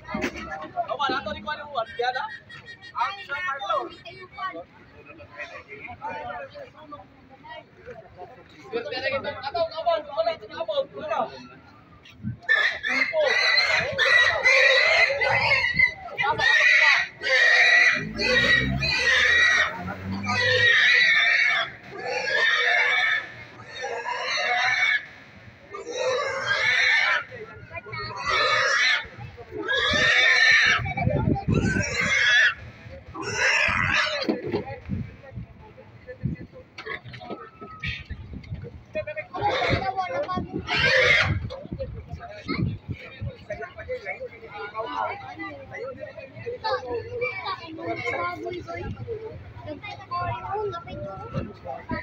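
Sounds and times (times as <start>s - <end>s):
pigs squealing: 12.4s - 25.1s, 25.7s - 27.3s, 27.9s - 34.3s, 39.4s - 39.9s, 40.6s - 41.5s.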